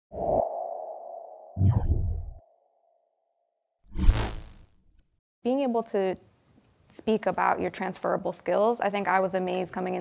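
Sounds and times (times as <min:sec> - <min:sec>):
loud whoosh: 0:03.9 - 0:04.8.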